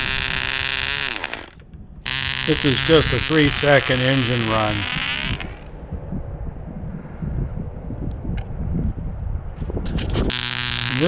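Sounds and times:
wind buffeting microphone: 0:00.0 - 0:01.0, 0:01.6 - 0:11.0.

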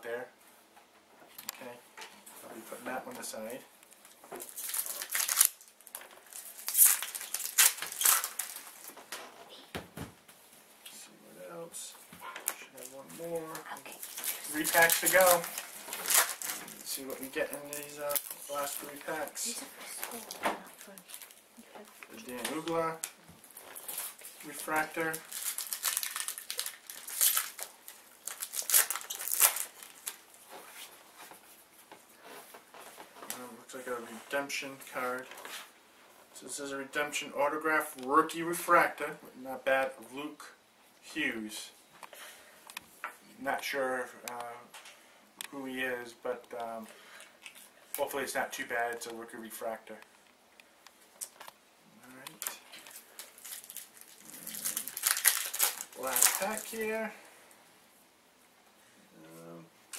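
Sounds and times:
cards rustling: 0:02.8 - 0:09.3, 0:12.4 - 0:31.5, 0:52.2 - 0:57.1
foil wrapper crinkling and tearing: 0:04.0 - 0:09.0, 0:13.9 - 0:21.4, 0:22.0 - 0:30.5, 0:52.2 - 0:57.2.

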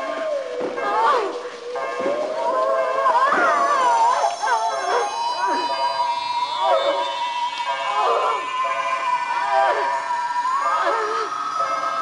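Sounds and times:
steady high electronic tone: 0:04.1 - 0:12.0.

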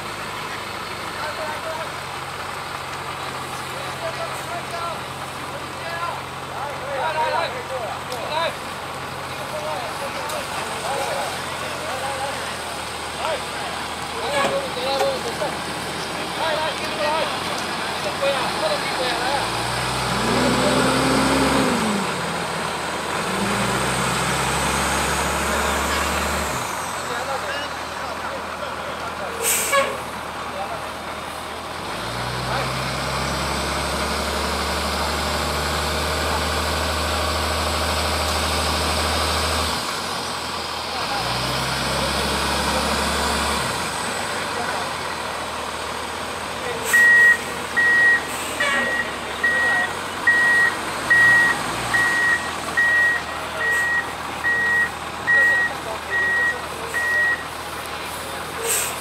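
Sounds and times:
tow tractor engine rumble: 0:00.0 - 0:59.0
reversing alarm beeping: 0:46.9 - 0:57.5.

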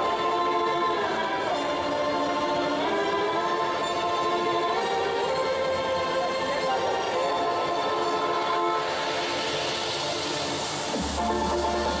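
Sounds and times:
violin and orchestra music: 0:00.0 - 0:12.0.

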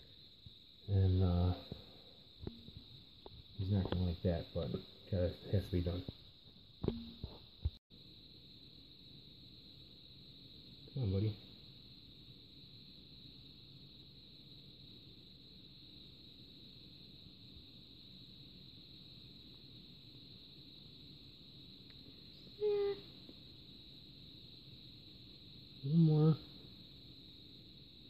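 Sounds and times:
faint high-pitched hiss: 0:00.0 - 0:28.0.

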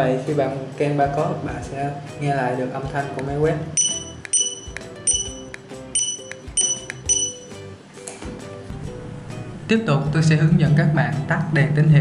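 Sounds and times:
soft background music: 0:00.0 - 0:12.0
barcode scanner beeps: 0:03.8 - 0:07.6.

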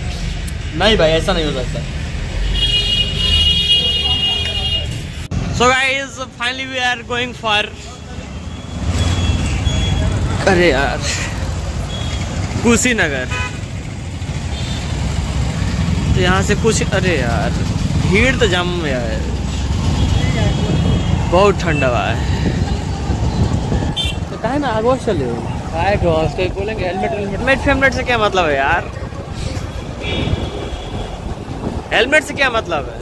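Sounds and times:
street traffic rumble: 0:00.0 - 0:33.0
motorcycle and car engines idling: 0:13.3 - 0:18.4
wind buffeting microphone: 0:22.2 - 0:26.9, 0:28.7 - 0:31.9.

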